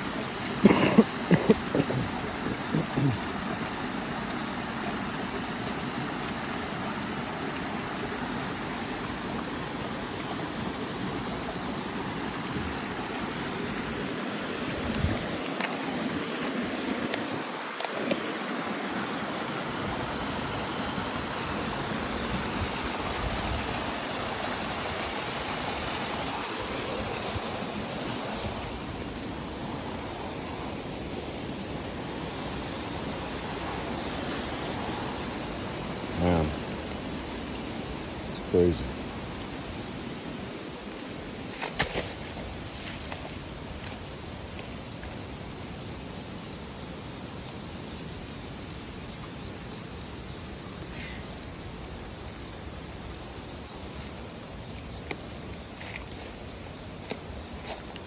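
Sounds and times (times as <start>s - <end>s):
stream water rushing: 0.0s - 58.0s.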